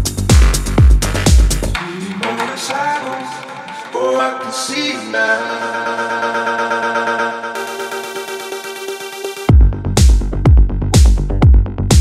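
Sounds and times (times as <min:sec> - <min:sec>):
layered synthesizer notes: 0:05.5 - 0:12.0.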